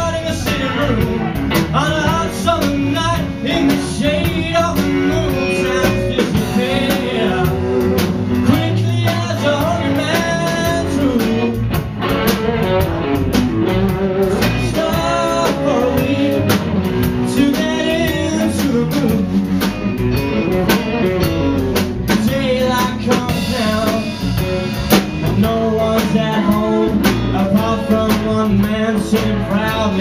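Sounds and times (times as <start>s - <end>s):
man singing: 0.0s - 11.8s, 14.0s - 19.6s, 22.0s - 30.0s
drum kit: 0.0s - 30.0s
electric guitar: 0.0s - 30.0s.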